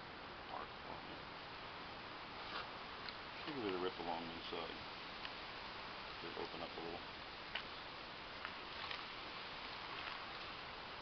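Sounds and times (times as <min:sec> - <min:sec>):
steady background hiss: 0:00.0 - 0:11.0
soft clicks and rustles: 0:02.4 - 0:03.9, 0:07.5 - 0:07.8, 0:08.4 - 0:09.2, 0:09.8 - 0:10.6.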